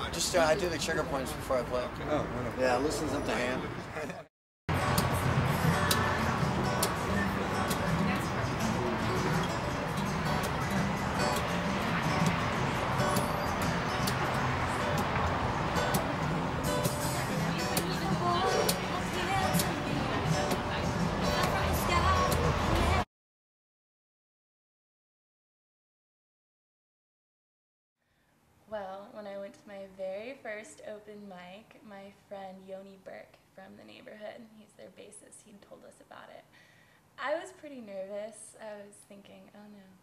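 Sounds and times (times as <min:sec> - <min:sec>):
acoustic guitar playing: 0:04.7 - 0:23.0.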